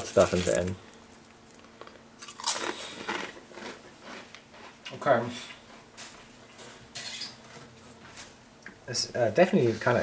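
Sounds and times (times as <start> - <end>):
potato chip crunching: 0.0 - 5.0.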